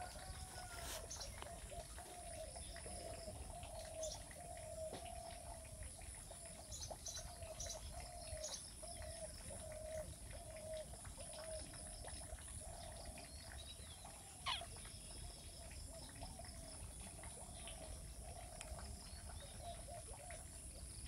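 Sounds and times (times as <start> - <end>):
bird chirps: 14.0 - 15.0
sharp bird call: 14.4 - 14.6
bird calling low note: 14.4 - 14.8.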